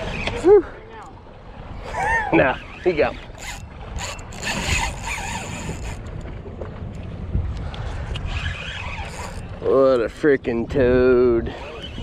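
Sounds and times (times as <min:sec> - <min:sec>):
water against boat: 0:00.0 - 0:12.0
wind on microphone: 0:01.6 - 0:12.0
fishing reel clicking: 0:02.9 - 0:06.2, 0:08.2 - 0:09.5.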